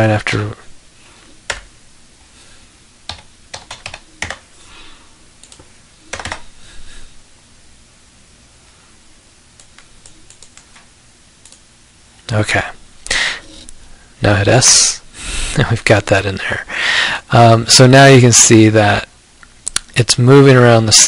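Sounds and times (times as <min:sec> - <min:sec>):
computer keyboard keystrokes: 0:01.5 - 0:01.7, 0:03.1 - 0:04.4, 0:05.4 - 0:06.4, 0:09.6 - 0:10.8.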